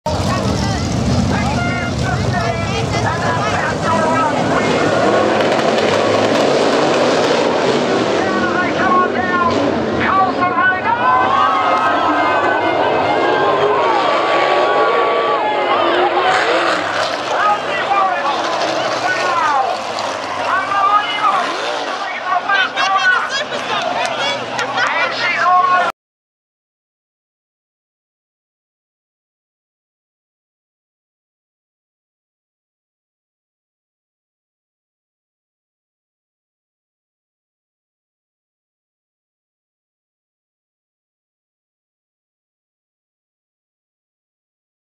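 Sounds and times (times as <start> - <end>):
people talking: 0.1 - 5.6, 8.0 - 25.9
race car engines: 0.1 - 25.9.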